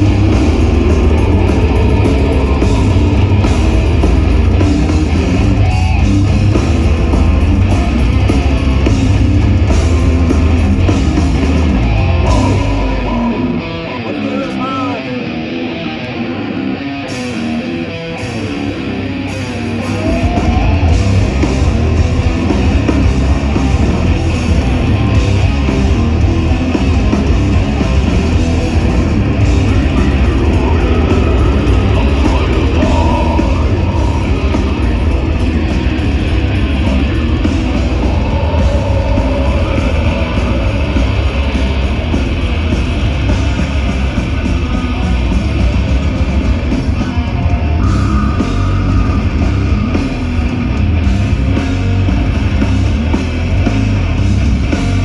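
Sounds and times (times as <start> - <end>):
death metal band playing live: 0.0 - 55.0.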